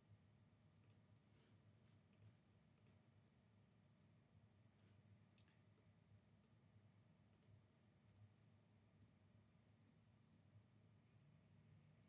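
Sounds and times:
low room hum: 0.0 - 12.0
computer mouse clicks: 0.8 - 1.0, 2.1 - 3.0, 7.3 - 7.6.

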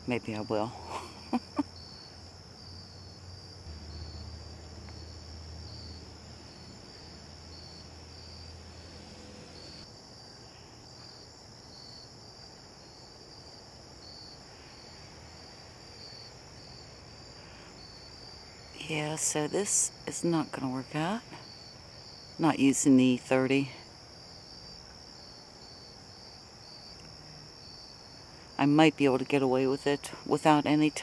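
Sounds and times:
crickets trilling: 0.0 - 31.0
pulsing cricket chirp: 0.1 - 31.0
low hum: 3.6 - 9.8.

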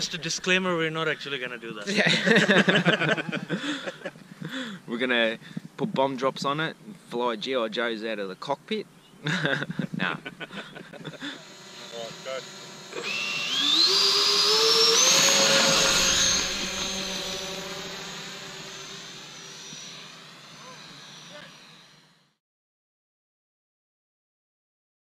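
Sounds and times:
electric ducted fans whining: 0.0 - 5.8, 8.8 - 22.4.

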